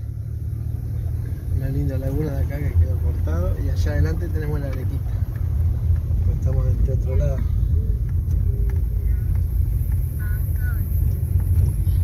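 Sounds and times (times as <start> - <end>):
car driving slowly from inside: 0.0 - 12.0.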